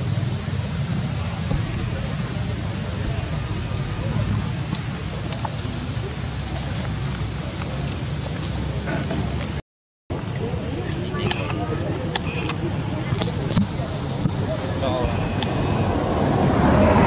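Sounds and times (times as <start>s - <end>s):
faint distant voices: 0.0s - 17.0s
low rumble: 0.4s - 8.8s.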